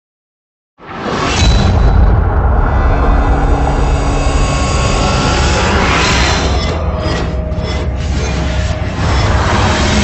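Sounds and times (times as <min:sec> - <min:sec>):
deep rumble: 0:01.4 - 0:08.0.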